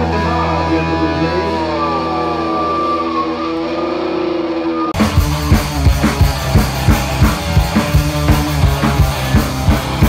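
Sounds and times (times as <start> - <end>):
electric guitar sliding notes: 0.0 - 10.0
held bass note: 0.0 - 10.0.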